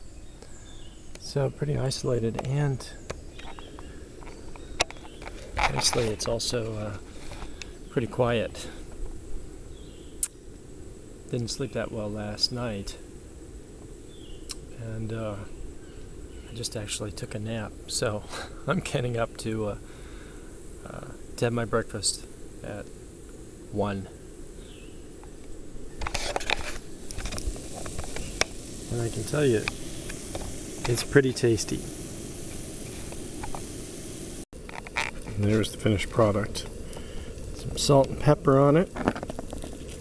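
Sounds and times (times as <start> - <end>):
low outdoor rumble: 0.0 - 40.0
pancake frying crackling: 3.1 - 11.2, 24.2 - 40.0
gas stove rushing: 26.0 - 37.2.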